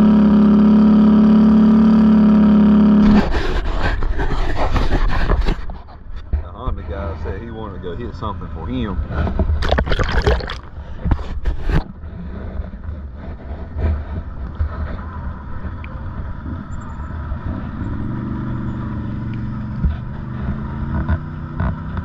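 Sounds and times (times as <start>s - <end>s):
atv engines running: 12.0s - 22.0s.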